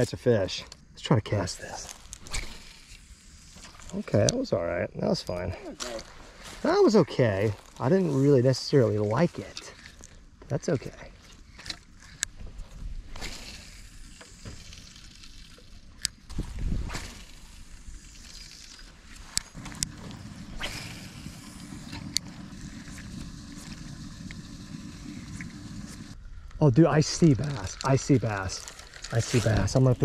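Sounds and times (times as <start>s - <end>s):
fishing reel cranking: 1.8s - 4.0s, 6.6s - 30.0s
clicks and rustles handling rod: 8.8s - 13.6s, 27.2s - 30.0s.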